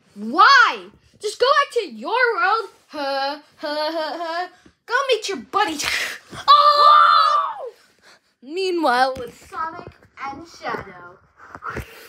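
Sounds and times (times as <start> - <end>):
child screaming: 6.4 - 7.8.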